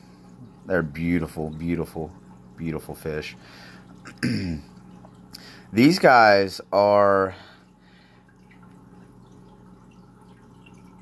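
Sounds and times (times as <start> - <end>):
aquarium water trickling: 0.0 - 11.0
low hum of tank equipment: 0.0 - 11.0.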